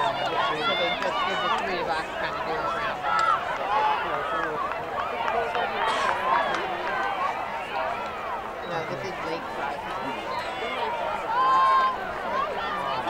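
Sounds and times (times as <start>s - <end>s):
many voices calling and shouting: 0.0s - 13.0s.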